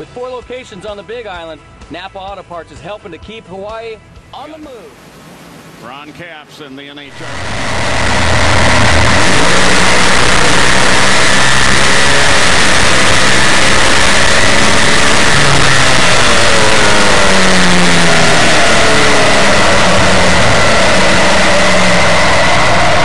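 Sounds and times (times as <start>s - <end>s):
supercharged engine running loud: 7.1s - 23.0s.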